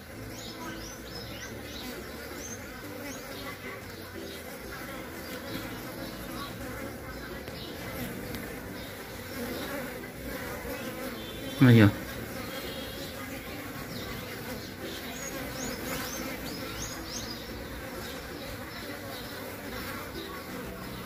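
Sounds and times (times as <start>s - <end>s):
bees buzzing: 0.0s - 21.0s.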